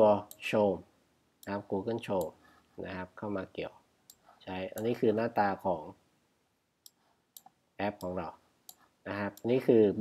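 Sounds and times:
man talking: 0.0 - 3.8, 4.4 - 6.0, 7.8 - 8.4, 9.0 - 10.0
computer mouse clicks: 6.8 - 8.1.

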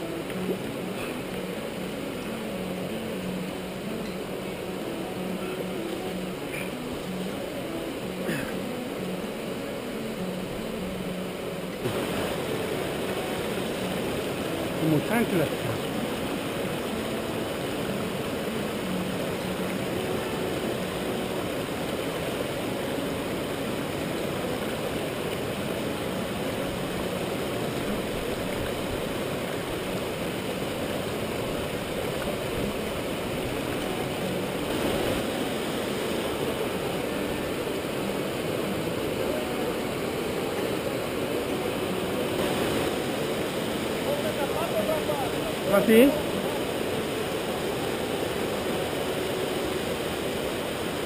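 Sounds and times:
river rapids rushing: 0.0 - 51.0.

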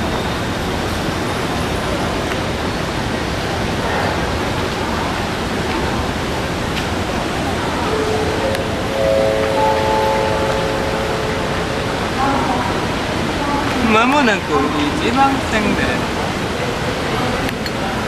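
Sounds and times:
held tones stacking into chord: 7.8 - 13.3.

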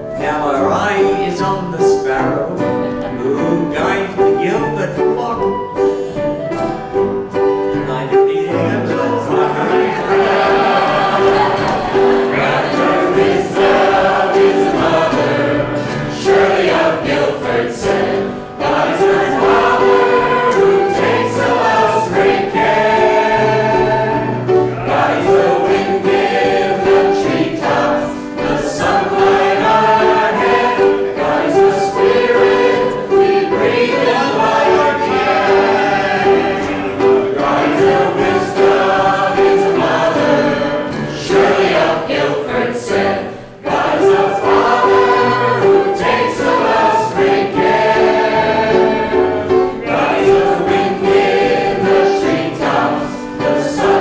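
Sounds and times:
mixed choir singing: 7.6 - 54.0.

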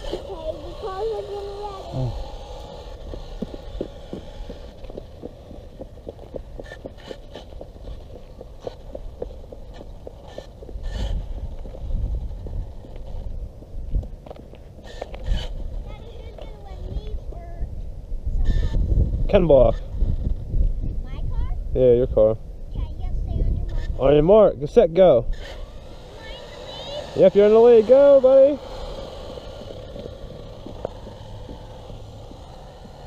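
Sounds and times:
wind rumble on microphone: 1.9 - 26.1.

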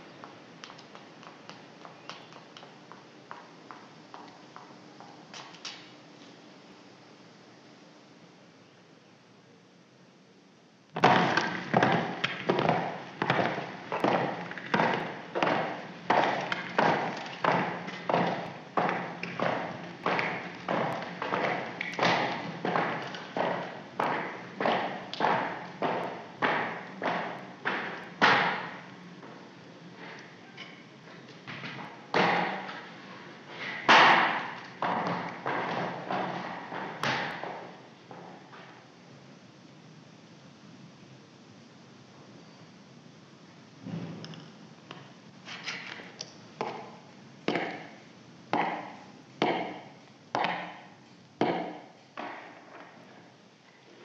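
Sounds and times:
film soundtrack hiss: 0.0 - 54.0
footsteps on hard stairs: 11.0 - 29.4, 33.7 - 38.7, 46.6 - 48.0, 48.6 - 49.8, 51.4 - 53.0.

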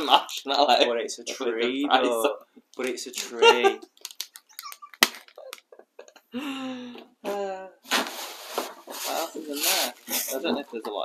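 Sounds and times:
person laughing: 4.6 - 6.5
rummaging in gift box: 7.9 - 10.8.

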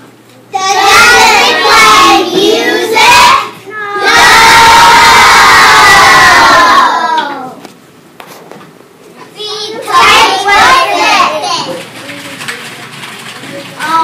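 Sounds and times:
children shouting together: 0.6 - 7.6, 9.5 - 11.7
children cheering: 2.8 - 7.6.

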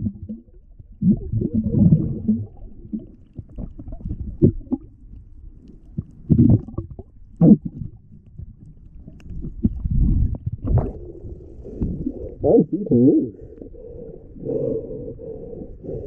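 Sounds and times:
underwater bursts: 0.0 - 4.9, 9.0 - 16.0
underwater water movement rumbling: 0.0 - 16.0.

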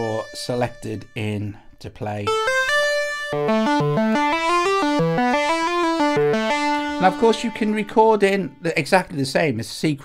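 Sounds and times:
synthesizer notes: 2.3 - 8.8.

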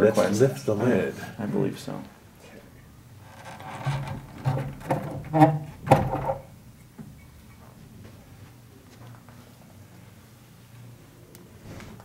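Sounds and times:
metal platter knocks and scrapes: 3.6 - 6.5.

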